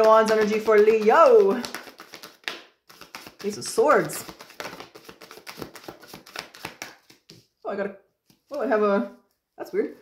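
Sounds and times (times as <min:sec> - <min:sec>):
cards being shuffled: 0:00.0 - 0:07.6, 0:08.2 - 0:08.6.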